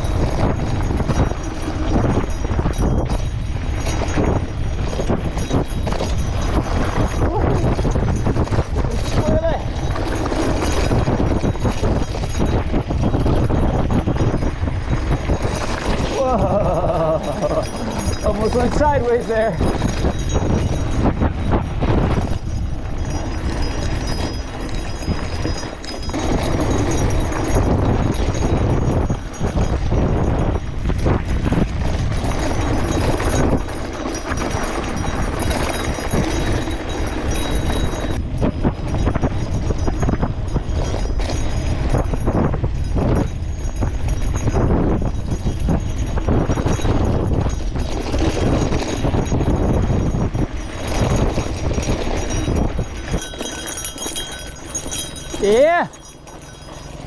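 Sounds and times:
bike rattling: 0.0 - 57.0.

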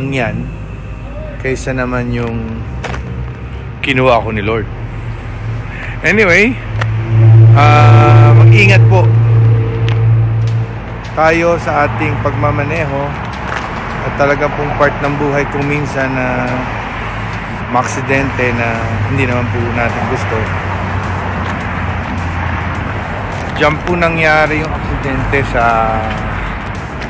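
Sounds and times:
road traffic rumble: 0.0 - 27.0.

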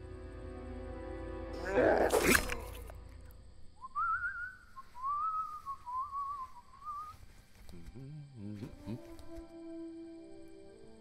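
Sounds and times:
thin wavering whistle: 3.8 - 7.3.

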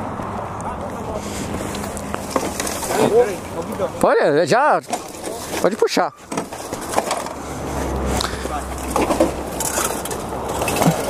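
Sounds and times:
highway traffic: 0.0 - 11.0
wind: 0.0 - 11.0
people talking indistinctly: 0.6 - 6.3.

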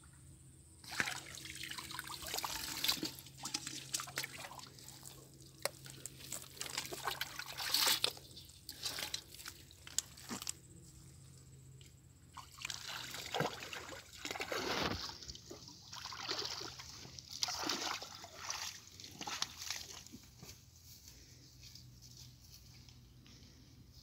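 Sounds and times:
water splashing and dripping: 0.8 - 9.4, 12.4 - 20.1.

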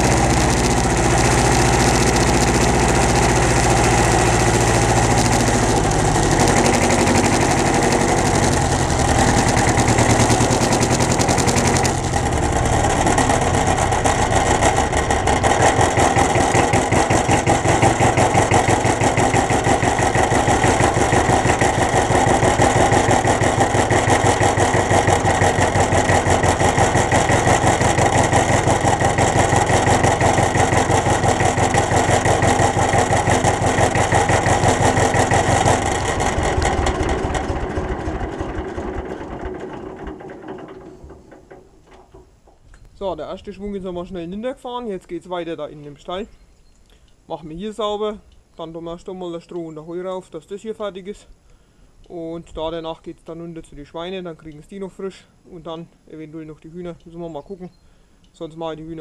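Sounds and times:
tractor diesel engine running: 0.0 - 43.2.

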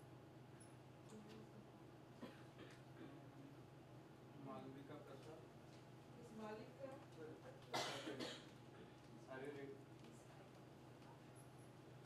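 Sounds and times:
low room hum: 0.0 - 12.0
person coughing: 7.8 - 8.5.

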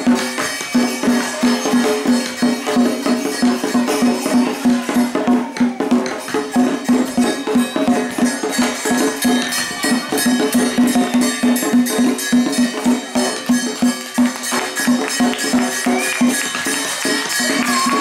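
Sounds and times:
clashing cymbals: 0.0 - 18.0
drum beating fast rhythm: 0.0 - 18.0.

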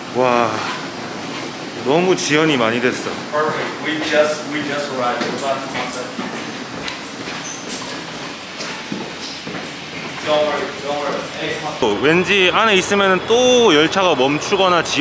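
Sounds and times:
people talking: 0.1 - 0.8, 1.8 - 6.5, 10.2 - 15.0.

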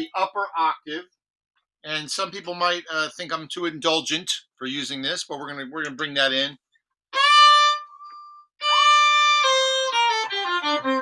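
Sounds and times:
bowed violin with octave effect: 7.2 - 11.0.

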